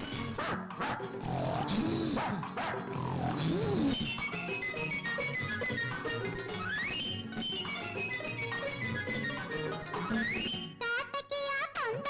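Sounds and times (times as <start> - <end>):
film score music: 0.0 - 10.8.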